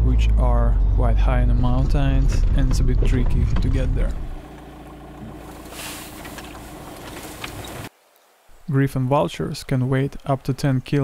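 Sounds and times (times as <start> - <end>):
car engine and tyre hum: 0.0 - 7.9.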